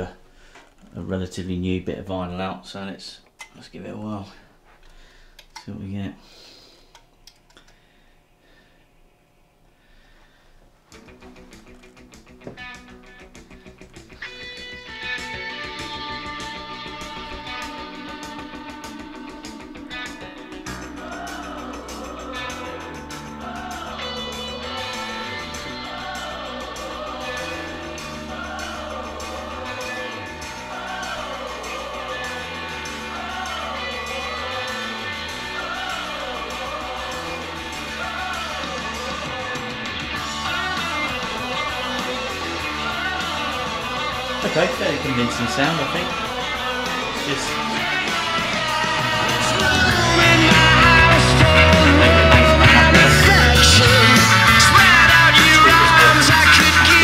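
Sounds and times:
guitar music from speakers: 11.0 - 57.0
steady bass line: 11.1 - 57.0.

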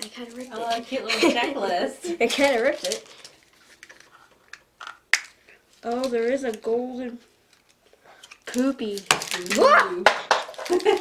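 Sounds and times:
paper wrapping rustling and tearing: 0.0 - 4.6, 5.2 - 11.0.

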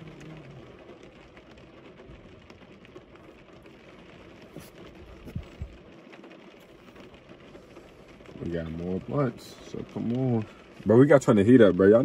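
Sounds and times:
people rustling in seats: 4.4 - 5.9.

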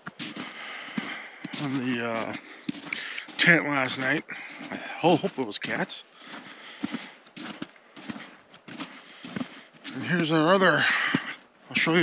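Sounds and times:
footsteps in snow: 0.0 - 12.0.

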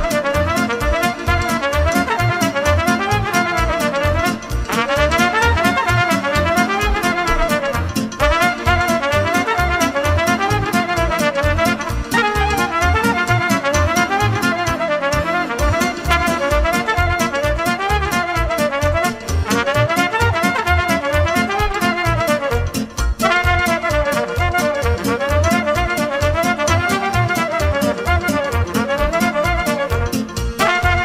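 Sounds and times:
backing band with quick beat: 0.0 - 31.0
trumpet playing folk dance tune: 0.0 - 31.0.

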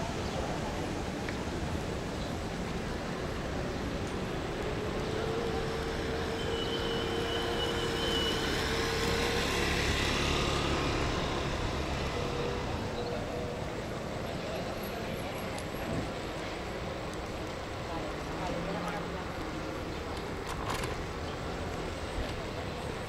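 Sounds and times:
street traffic noise: 0.0 - 23.0
motor vehicle passing: 8.3 - 12.8.

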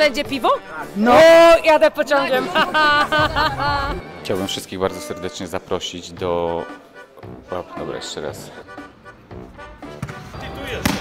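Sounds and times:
background music: 0.0 - 11.0
ball thumping on floor: 9.9 - 11.0.

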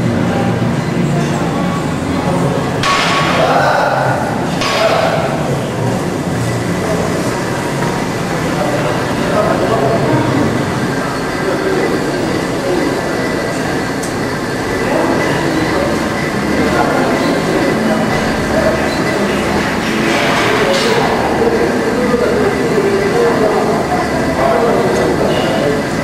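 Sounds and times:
indistinct voices: 0.0 - 26.0.

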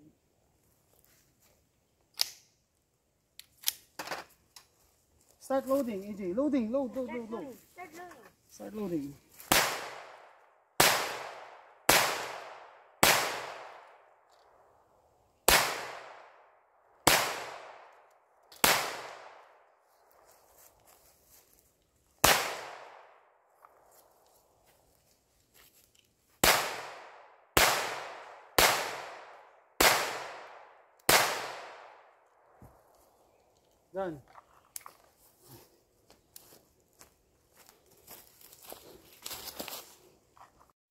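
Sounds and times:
pistol shots echoing: 10.8 - 13.9, 15.5 - 16.4, 17.0 - 17.9, 18.6 - 19.5, 22.2 - 23.2, 26.4 - 32.1.

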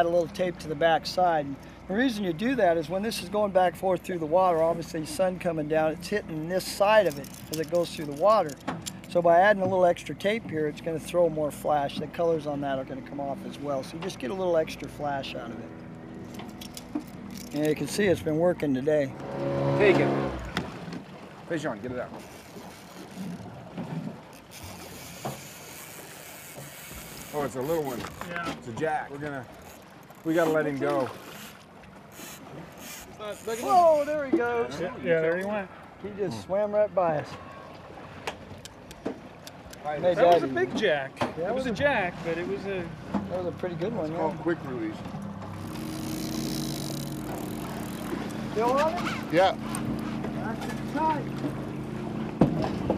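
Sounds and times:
outboard motor running: 0.0 - 52.9
water splashing around boat: 0.0 - 52.9
wind: 0.0 - 52.9.

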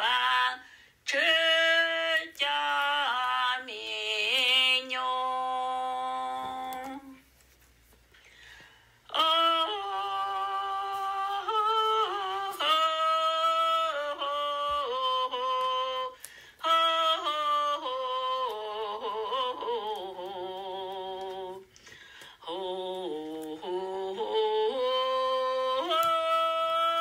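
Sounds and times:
person singing long held notes: 0.0 - 7.2, 9.0 - 27.0.

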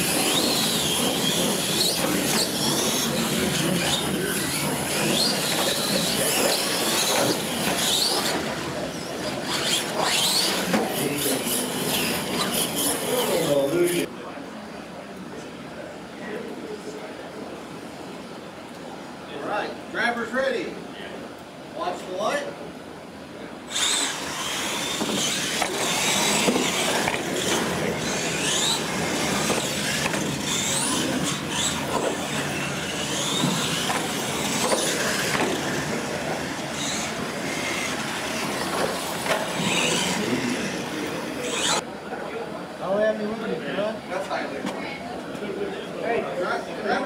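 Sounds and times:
toy truck motors whining: 0.0 - 14.1, 23.7 - 41.8
crowd chatter: 0.0 - 47.0.

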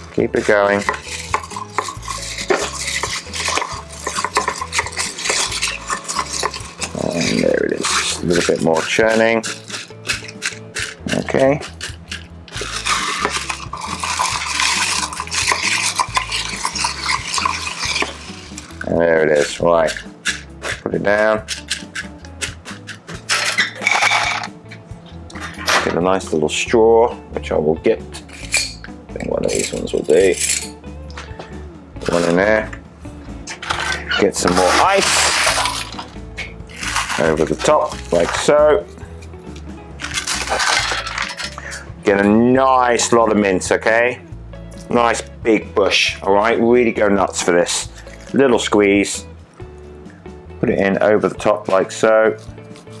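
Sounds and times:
spoon churning ice in metal cup: 0.0 - 24.5, 33.6 - 38.5, 39.5 - 42.2, 47.4 - 48.7, 52.4 - 53.0.

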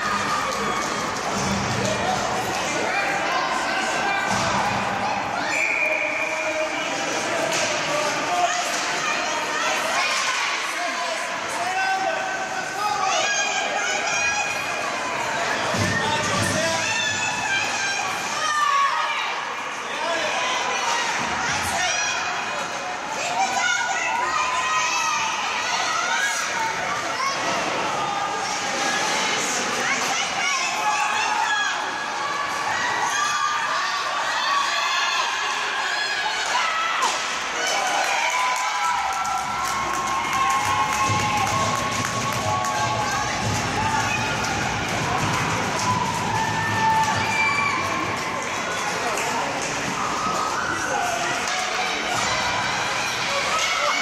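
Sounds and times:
spectators shouting and cheering: 0.0 - 54.0.

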